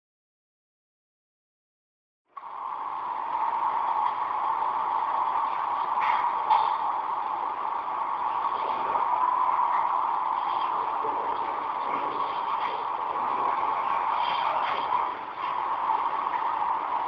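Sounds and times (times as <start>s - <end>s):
industrial machinery noise: 2.3s - 17.0s.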